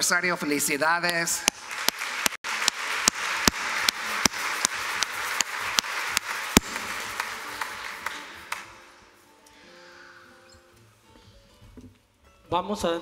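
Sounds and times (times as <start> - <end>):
congregation applauding: 1.0 - 9.1.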